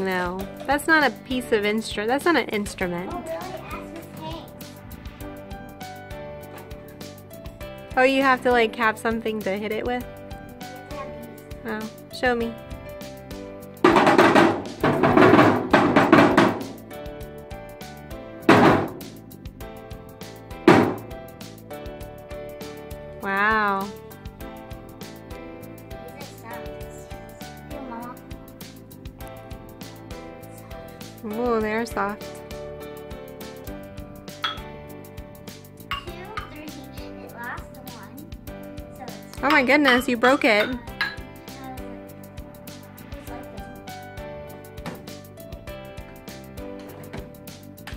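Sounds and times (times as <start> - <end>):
background music with steady beat: 0.0 - 47.9
percussion crashes struck with mallets: 13.8 - 17.0, 18.5 - 19.3, 20.6 - 21.2
wooden xylophone strikes: 34.4 - 34.8.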